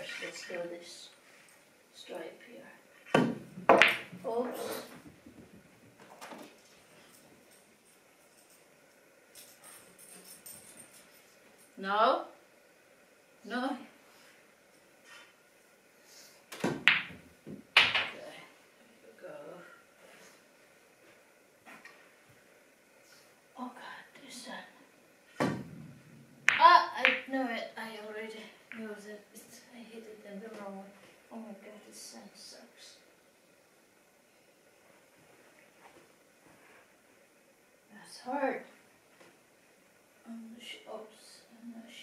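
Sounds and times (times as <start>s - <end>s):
cue striking ball: 3.1s - 4.2s, 16.6s - 18.2s.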